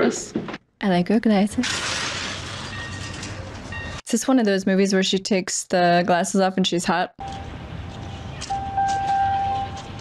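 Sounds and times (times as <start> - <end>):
city street rumble: 1.5 - 10.0.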